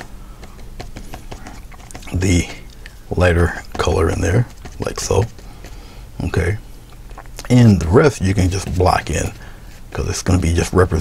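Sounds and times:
paintbrush tapping on paper: 0.0 - 5.8, 8.0 - 10.4.

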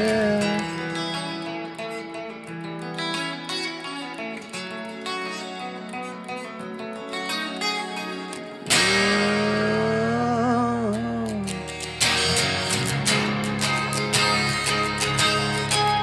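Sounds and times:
guitar picking single notes: 0.0 - 16.0
loud guitar chord: 0.0 - 16.0.

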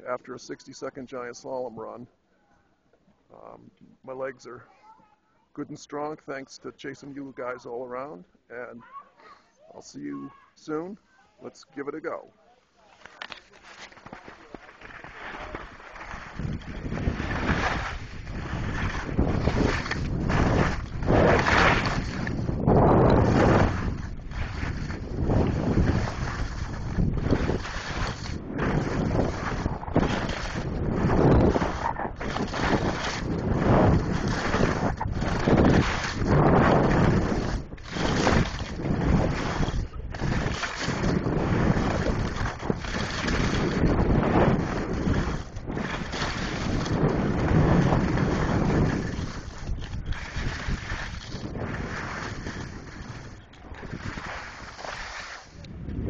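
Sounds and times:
wind buffeting microphone: 16.1 - 56.0.

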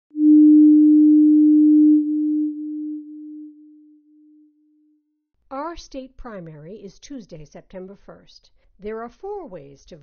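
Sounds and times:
steady electronic tone: 0.1 - 5.0.

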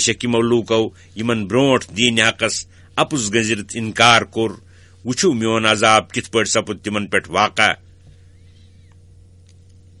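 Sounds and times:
man speaking: 0.0 - 7.9
faint steady hum: 0.0 - 10.0.

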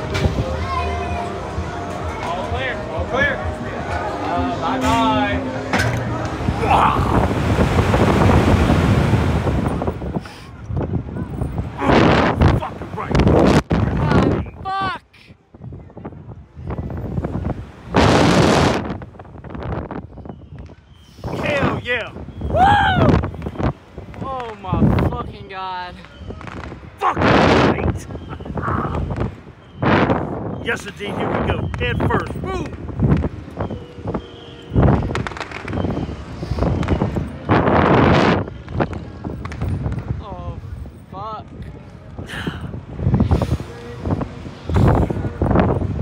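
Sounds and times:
gusty wind buffeting: 0.0 - 46.0
wind rushing across microphone: 0.0 - 46.0.

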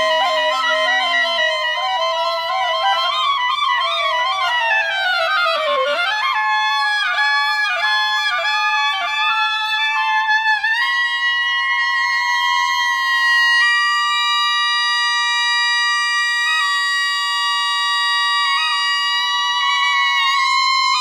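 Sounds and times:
clarinets playing: 0.0 - 6.4.

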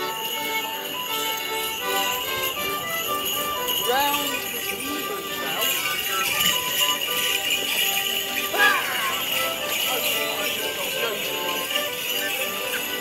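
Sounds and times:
shin bells jingling: 0.0 - 13.0.

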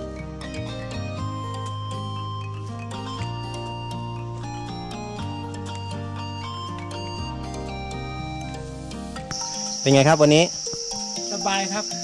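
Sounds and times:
acoustic background music: 0.0 - 12.0
high-pitched insect drone: 7.2 - 12.0.

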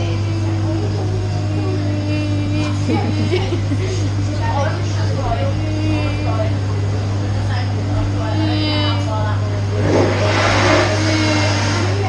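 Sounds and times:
faint voices: 0.0 - 12.0
steady low hum: 0.0 - 12.0.

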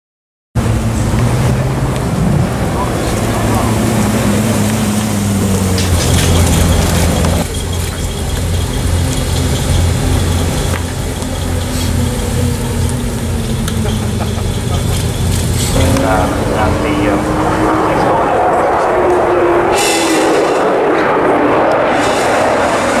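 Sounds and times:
car engine running at low revs: 0.6 - 23.0
background voices: 0.9 - 22.1.

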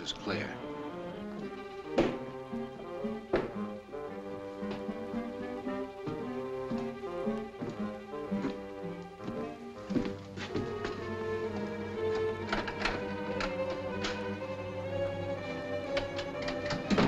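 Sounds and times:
film score music: 0.0 - 17.0
sharp knocks: 1.9 - 2.3, 3.3 - 3.7.

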